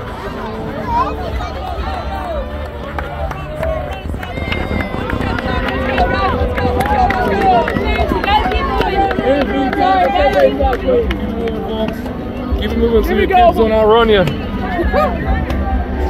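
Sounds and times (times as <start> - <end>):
crowd chatter and calls: 0.0 - 16.0.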